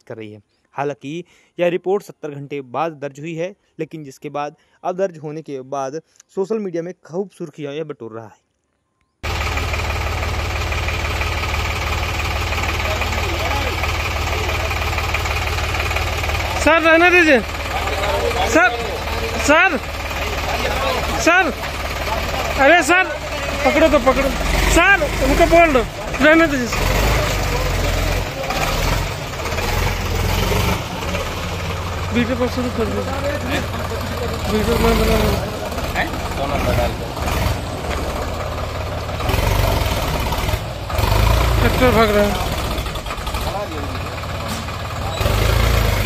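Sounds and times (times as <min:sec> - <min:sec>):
tractor engine idling: 0:09.2 - 0:46.0.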